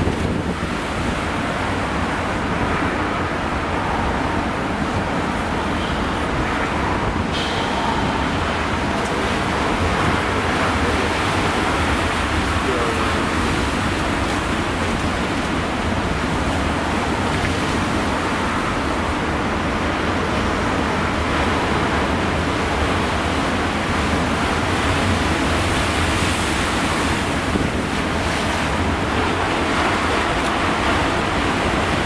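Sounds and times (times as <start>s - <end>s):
surf breaking over rocks: 0.0s - 32.0s
wind rumbling on microphone: 0.0s - 32.0s.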